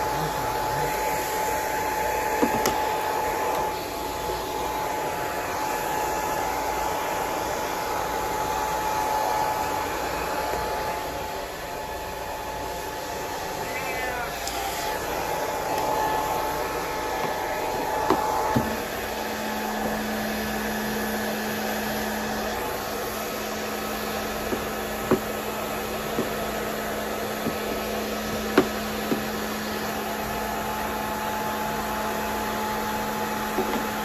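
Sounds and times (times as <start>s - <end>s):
hair dryer running: 0.0s - 34.0s.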